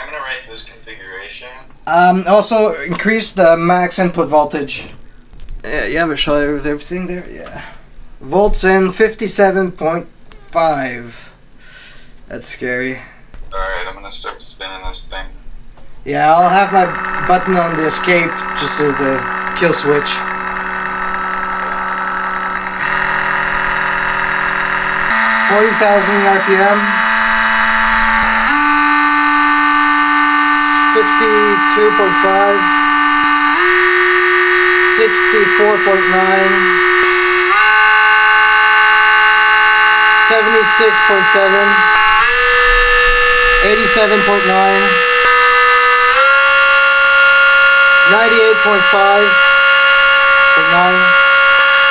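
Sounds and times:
electric motor whine: 16.2 - 51.9.

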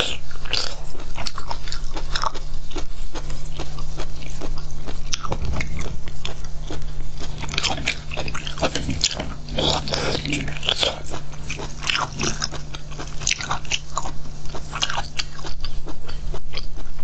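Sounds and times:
steady low hum: 0.0 - 17.0
wet clicks and crunches of chewing: 0.0 - 17.0.

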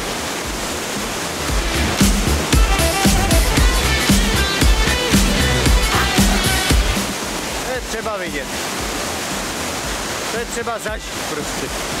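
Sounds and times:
waterfall rushing: 0.0 - 12.0
upbeat funk music: 1.4 - 7.2.

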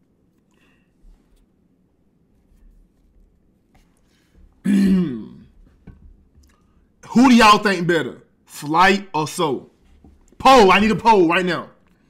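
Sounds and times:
man clearing his throat: 4.6 - 5.6.

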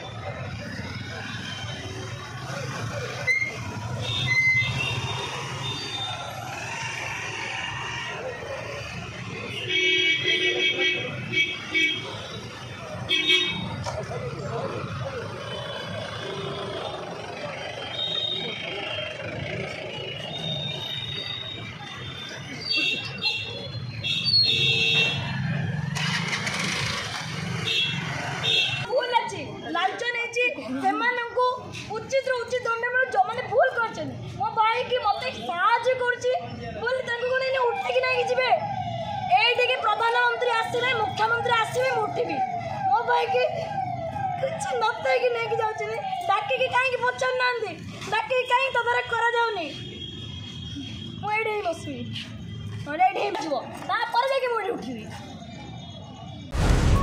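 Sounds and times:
motorcycle engines passing: 0.0 - 28.9
crowd noise: 0.0 - 57.0
street traffic: 0.0 - 57.0.

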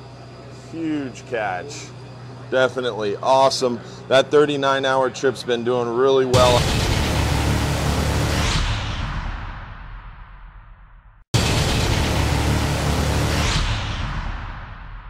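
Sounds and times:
sudden boom: 6.4 - 15.0.

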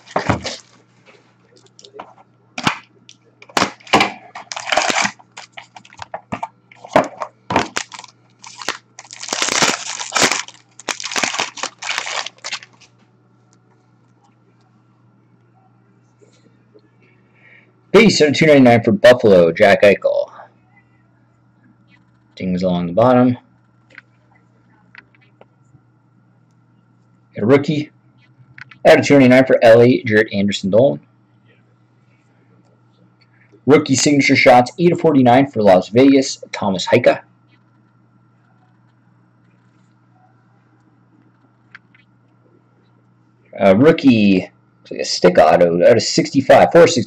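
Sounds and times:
packaging crackling and tearing: 3.5 - 6.1, 7.5 - 12.9
handling trading cards: 3.5 - 13.0.

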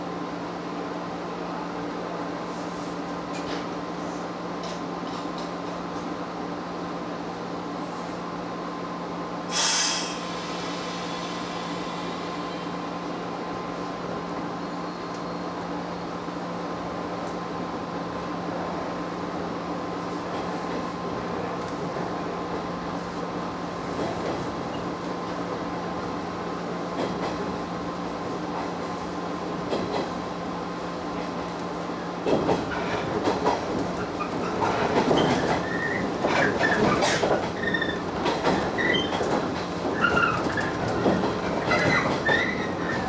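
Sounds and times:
electric train running hum: 0.0 - 43.0
train wheels clicking over rails: 29.5 - 30.3, 31.2 - 43.0.

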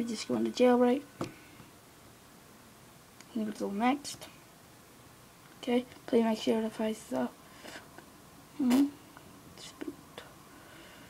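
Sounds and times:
person whispering: 9.6 - 10.4.

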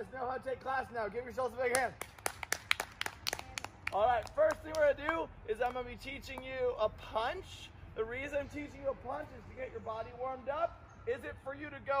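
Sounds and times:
children clapping: 1.7 - 4.9.

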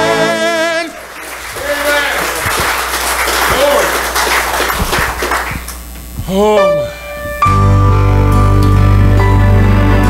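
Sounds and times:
congregation applauding: 0.0 - 6.0.

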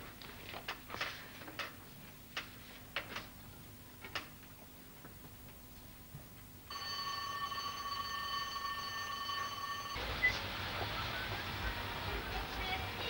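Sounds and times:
electric bell ringing: 6.7 - 10.2
street background noise: 9.4 - 13.0.

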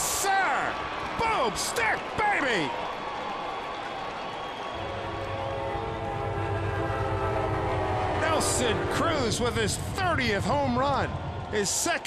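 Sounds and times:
ballpark crowd noise: 0.0 - 12.0
sustained horn-like chord: 4.8 - 10.4.

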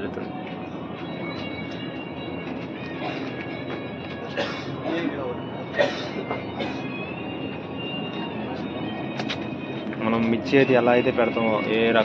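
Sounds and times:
steady machine noise: 0.0 - 12.0.

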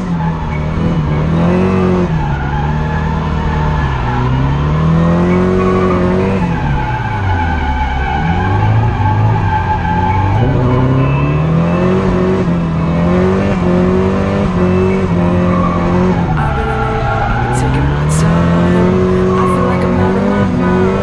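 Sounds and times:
car engine revving hard: 0.0 - 21.0
tires squealing: 0.0 - 21.0.

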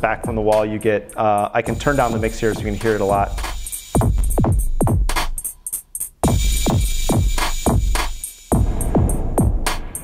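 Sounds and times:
electronic hip-hop drum beat: 0.0 - 10.0.

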